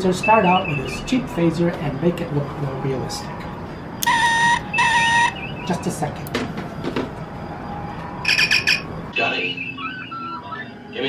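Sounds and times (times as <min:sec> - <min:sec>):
pulsed warbling communicator chirp: 0:00.1 - 0:01.1, 0:04.0 - 0:06.0, 0:08.3 - 0:11.0
electronic beeps and blips: 0:04.0 - 0:05.7, 0:08.3 - 0:08.8.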